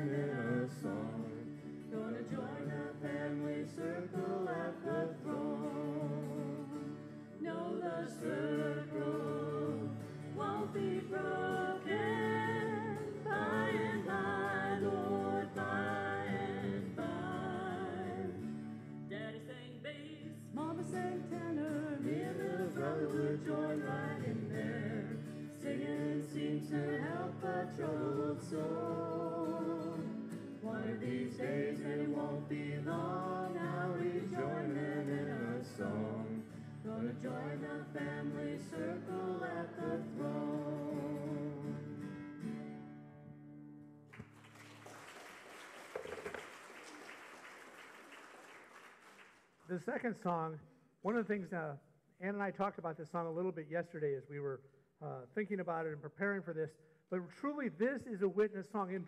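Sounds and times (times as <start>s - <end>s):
vocal group singing gospel: 0.0s - 18.6s, 20.4s - 42.0s.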